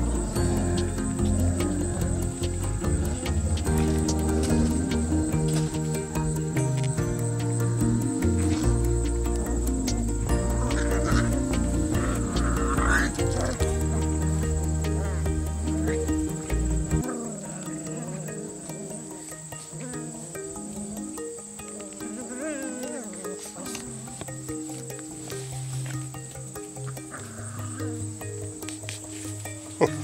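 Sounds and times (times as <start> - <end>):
deep bass line: 0.0 - 17.0
background music: 0.0 - 30.0.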